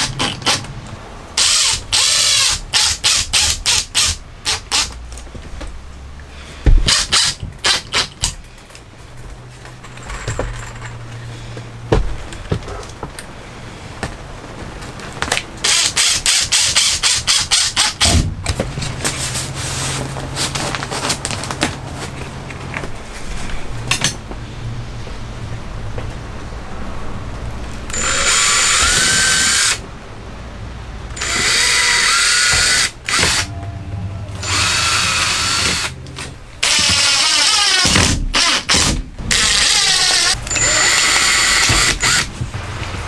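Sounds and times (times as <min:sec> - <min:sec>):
impact driver driving screws: 0:00.0 - 0:00.7, 0:01.4 - 0:05.0, 0:06.8 - 0:08.4, 0:15.6 - 0:18.2, 0:27.9 - 0:29.8, 0:31.2 - 0:33.5, 0:34.4 - 0:36.0, 0:36.6 - 0:42.3.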